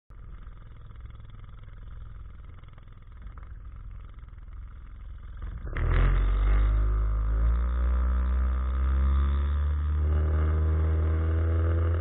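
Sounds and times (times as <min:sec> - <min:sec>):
outboard motor running: 0:00.1 - 0:05.8.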